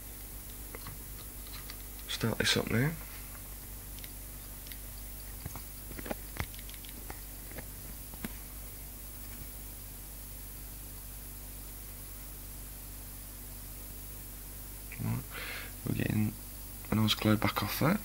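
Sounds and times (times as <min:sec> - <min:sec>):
motor low hum: 0:00.0 - 0:15.2
irregular clicks: 0:03.9 - 0:07.2.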